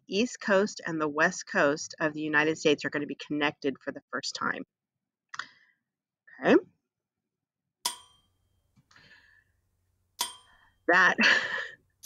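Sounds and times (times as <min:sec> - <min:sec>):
hammer clanging on metal track: 0:10.2 - 0:10.6.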